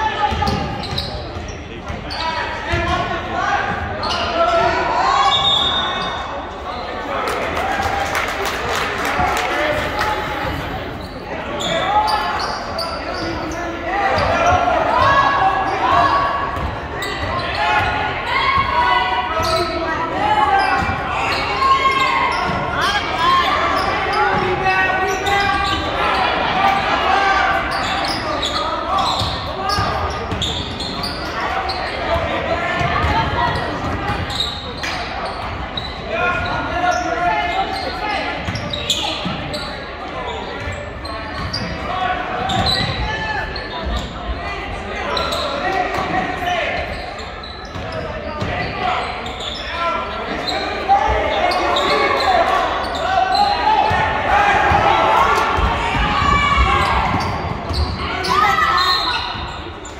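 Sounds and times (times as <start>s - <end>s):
overlapping voices: 7.0s - 11.0s.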